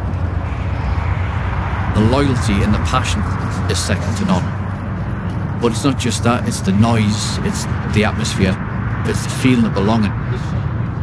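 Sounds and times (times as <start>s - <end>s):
vehicle rumble: 0.0s - 11.0s.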